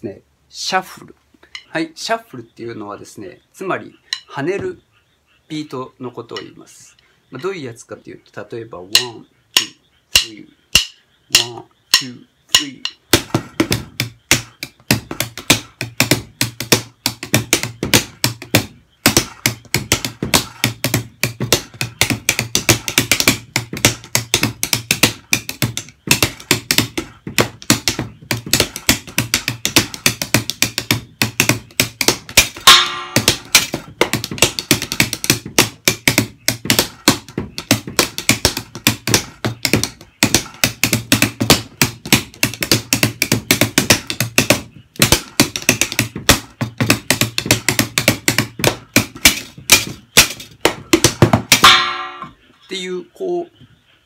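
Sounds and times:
drumsticks on cardboard boxes: 1.4 - 1.8, 4.1 - 4.7, 8.9 - 52.5
low kick drum: 12.8 - 51.8
ringing metallic hit: 51.6 - 52.4.

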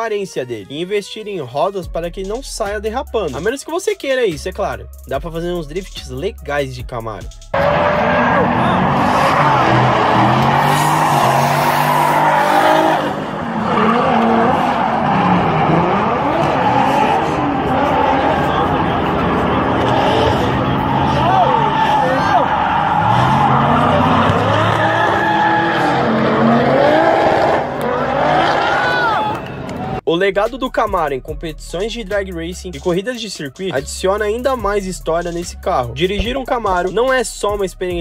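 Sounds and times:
car engines revving: 7.5 - 30.0
tyres screeching: 7.6 - 29.4.

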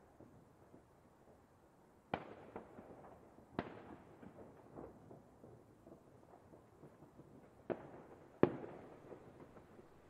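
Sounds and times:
small firework pops: 2.1 - 9.8.

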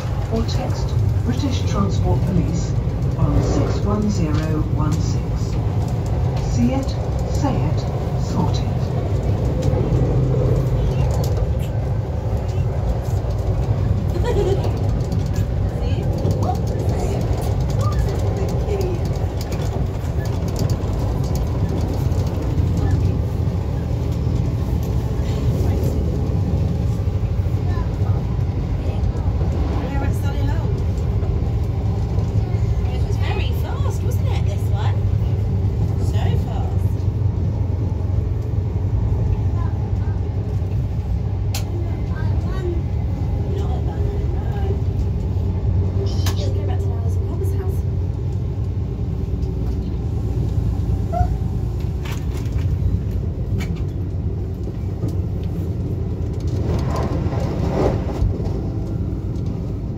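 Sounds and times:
train running heard from inside: 0.0 - 59.9.

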